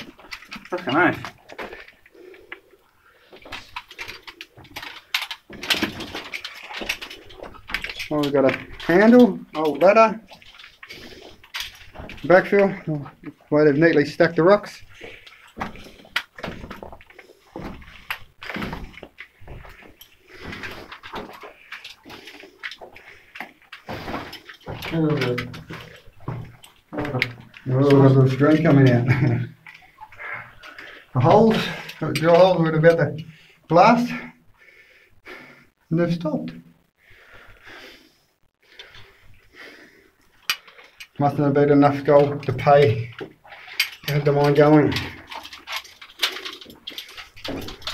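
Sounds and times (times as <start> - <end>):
footsteps crunching over loose rock: 0.0 - 33.2, 38.8 - 47.9
clothing and gear rustling: 0.0 - 35.4, 37.0 - 47.9.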